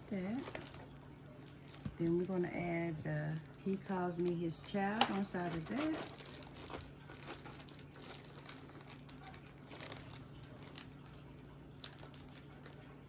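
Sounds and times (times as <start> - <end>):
low steady hum: 0.0 - 13.0
plastic wrap crinkling: 0.0 - 13.0.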